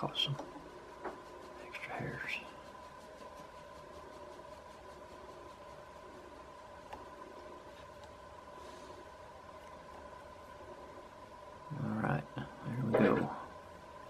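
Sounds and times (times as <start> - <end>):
faint steady hum: 0.0 - 14.0.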